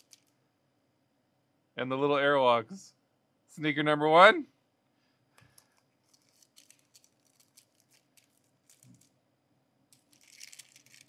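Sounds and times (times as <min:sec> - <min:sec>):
packaging crinkling: 0:00.0 - 0:00.4, 0:05.5 - 0:09.2, 0:09.9 - 0:11.0
paper box rustling and clicking: 0:06.1 - 0:09.1.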